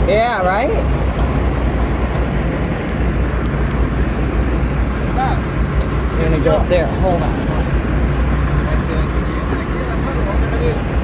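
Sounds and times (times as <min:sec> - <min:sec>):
boat engine humming: 0:00.0 - 0:11.0
water rushing: 0:00.0 - 0:11.0.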